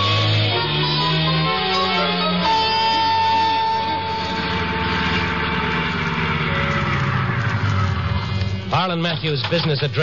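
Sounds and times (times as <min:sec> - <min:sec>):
held music note: 0:00.0 - 0:08.6
car engine running: 0:00.0 - 0:10.0.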